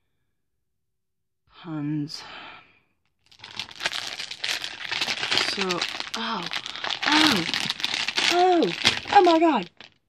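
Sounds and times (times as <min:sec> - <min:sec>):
packaging crinkling: 0:03.3 - 0:10.0.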